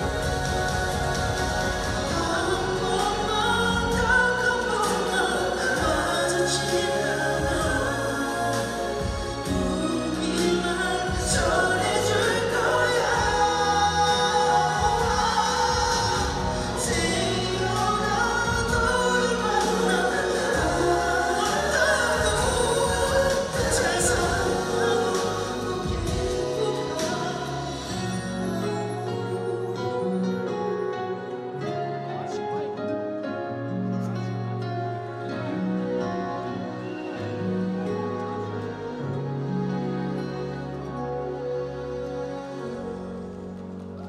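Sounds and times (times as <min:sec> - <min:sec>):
man singing into a microphone: 0:00.0 - 0:32.4
amplified backing track: 0:00.0 - 0:44.0.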